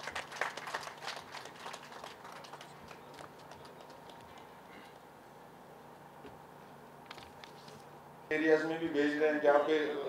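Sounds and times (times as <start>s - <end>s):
audience applause: 0.0s - 4.2s.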